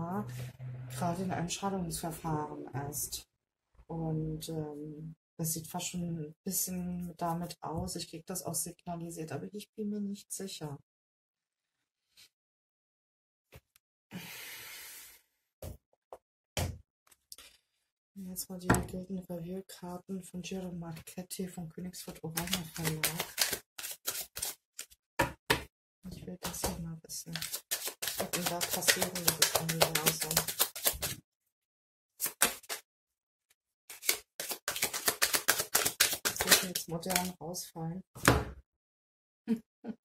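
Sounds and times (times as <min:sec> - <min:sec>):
breathy exhale: 0:14.1 - 0:15.3
cards being shuffled: 0:22.4 - 0:24.9, 0:27.3 - 0:31.2, 0:32.2 - 0:32.8, 0:33.9 - 0:37.3.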